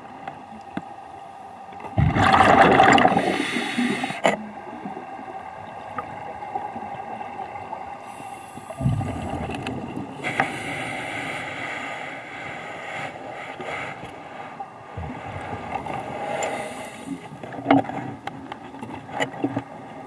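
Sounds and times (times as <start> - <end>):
faint steady hum: 0.0 - 20.0
diver exhaling bubbles: 2.0 - 4.2.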